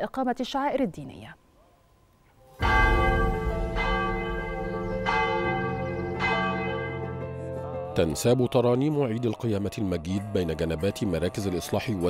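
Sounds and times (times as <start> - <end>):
church bell ringing: 2.6 - 7.9.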